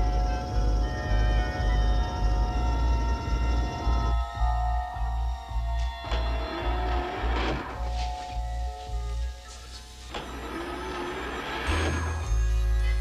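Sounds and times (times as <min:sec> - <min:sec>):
low electronic throb: 0:00.0 - 0:09.4.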